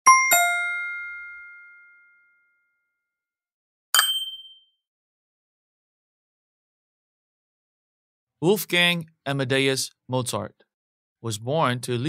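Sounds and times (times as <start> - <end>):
descending two-note chime: 0.1 - 2.0.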